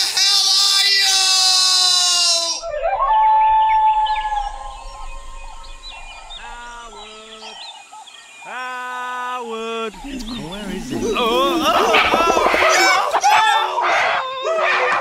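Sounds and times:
hooting animal calls: 0.0 - 8.3, 9.9 - 14.9
long falling cry: 0.4 - 7.6, 9.8 - 15.0.

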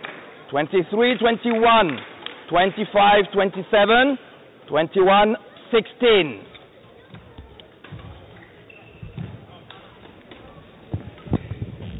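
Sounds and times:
faint distant voices: 0.0 - 11.9.

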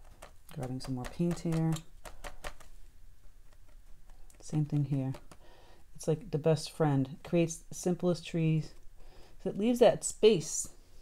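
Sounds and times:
sponge dabbing clicks and taps: 0.0 - 2.7, 3.5 - 5.5.

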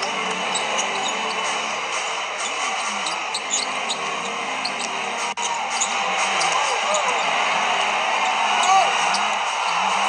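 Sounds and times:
arena crowd noise: 0.0 - 10.0
sneakers squeaking: 0.0 - 10.0.

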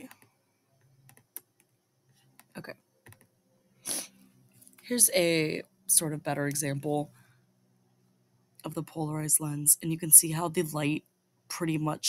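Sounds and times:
computer mouse and keyboard clicks: 0.0 - 3.3.

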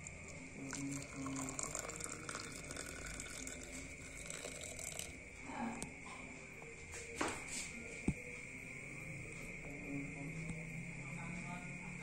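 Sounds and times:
water pouring into glass mug: 0.0 - 5.2.

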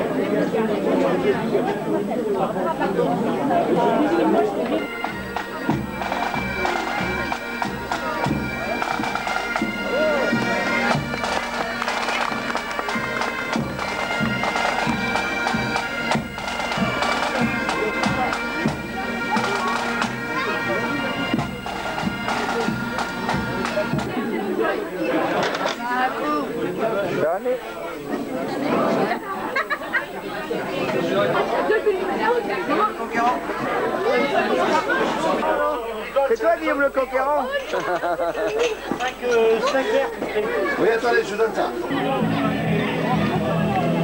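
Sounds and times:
crowd chatter: 0.0 - 44.0
bagpipes playing over a drone: 4.7 - 24.1
regular low drum beat: 21.2 - 24.3.

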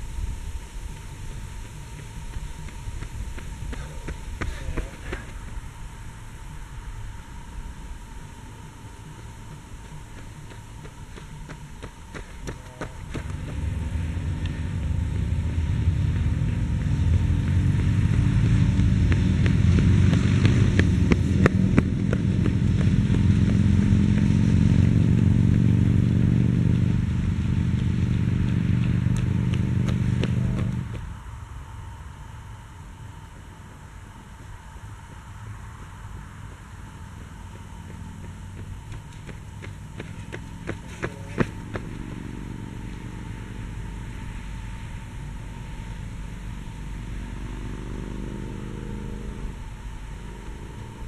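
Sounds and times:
motor engine running: 0.0 - 51.0.

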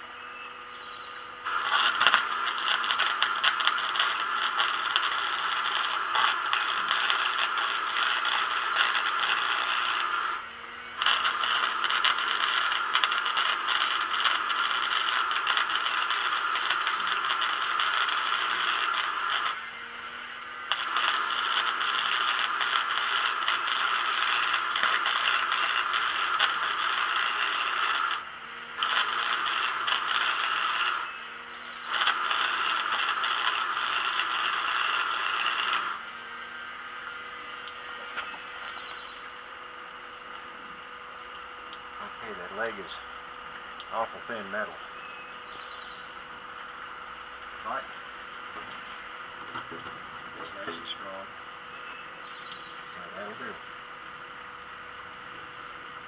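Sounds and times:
low hum of welder: 0.0 - 56.0
arc welder crackling sizzle: 1.0 - 56.0.

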